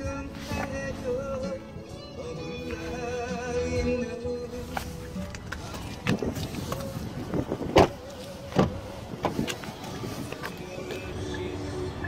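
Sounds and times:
car doors clunking shut: 4.7s - 11.2s.

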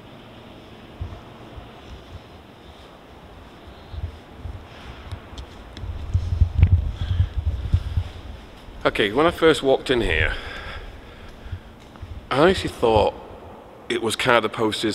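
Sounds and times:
wind rumble on microphone: 0.9s - 13.5s.

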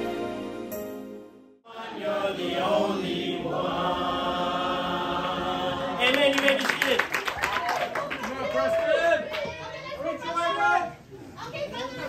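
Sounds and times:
music: 0.0s - 3.5s
choir singing: 1.6s - 6.3s
crowd noise with voices: 3.8s - 12.0s.

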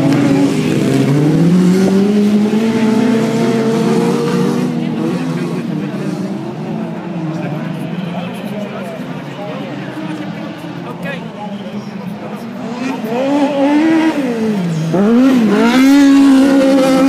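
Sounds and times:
race car engines revving: 0.0s - 17.0s.

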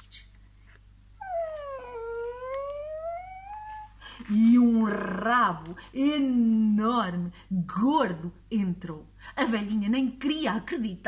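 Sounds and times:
voice imitating creaking door: 1.2s - 4.0s.

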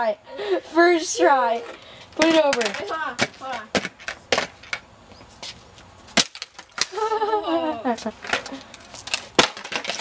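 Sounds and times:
voices: 0.0s - 3.8s, 6.9s - 8.8s
skateboard knocking on concrete: 2.2s - 4.9s, 8.2s - 10.0s
people laughing: 6.9s - 8.6s.

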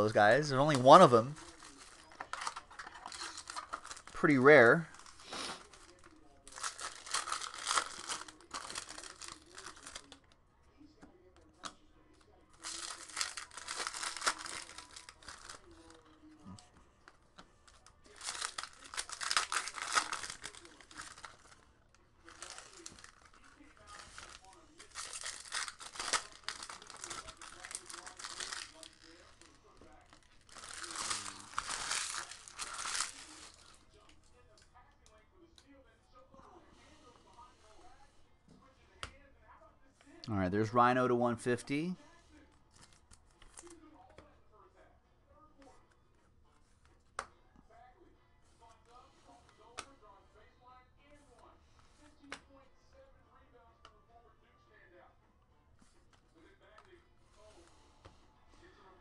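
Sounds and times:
foil wrappers crinkling and tearing: 0.0s - 10.3s, 12.5s - 16.2s, 17.6s - 34.0s, 42.7s - 43.8s.

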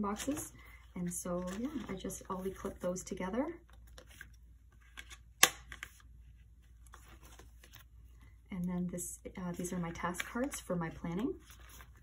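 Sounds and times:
page rustling: 0.0s - 2.8s, 3.7s - 8.0s, 9.6s - 12.0s.

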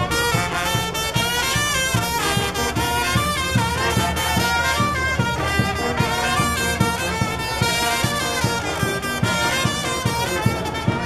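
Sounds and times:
brass band playing: 0.0s - 11.0s
steady low beat: 0.0s - 11.0s.

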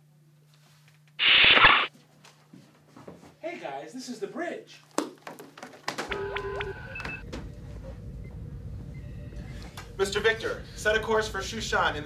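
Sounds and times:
electronic beeps and chirps: 6.1s - 7.2s
steady low hum: 6.1s - 12.0s.

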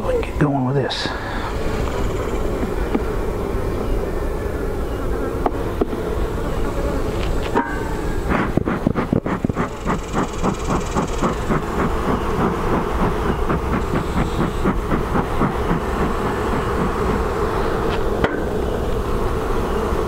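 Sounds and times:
honeybees buzzing: 0.0s - 20.0s
smoker bellows puffing: 7.4s - 19.4s.

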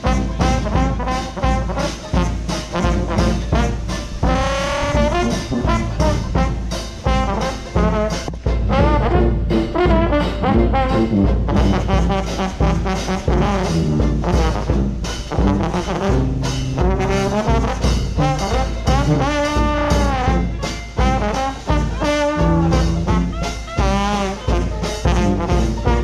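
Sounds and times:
jazz band playing: 0.0s - 26.0s
trombone sliding notes: 0.0s - 26.0s.

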